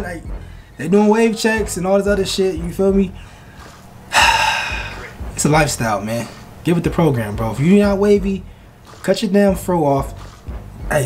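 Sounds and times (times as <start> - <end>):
man talking: 0.0 - 3.2, 4.6 - 8.4
man's sharp breath in: 3.2 - 5.2.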